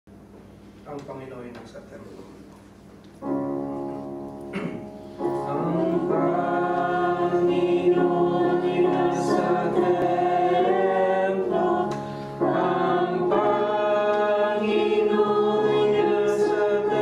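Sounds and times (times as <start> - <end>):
congregation singing a hymn: 5.2 - 17.0.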